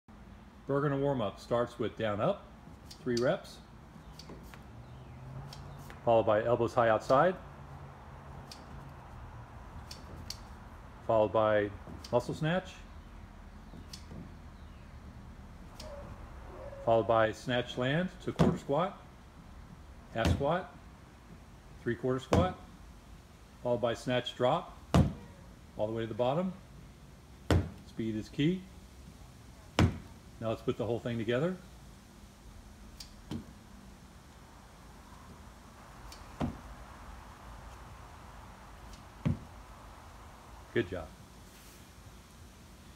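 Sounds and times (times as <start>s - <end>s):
faint background hum: 0.1s - 42.9s.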